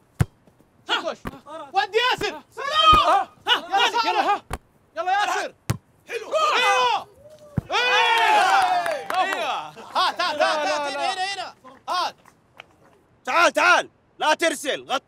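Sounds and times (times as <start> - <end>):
men shouting: 0.9 - 4.5, 6.1 - 11.5.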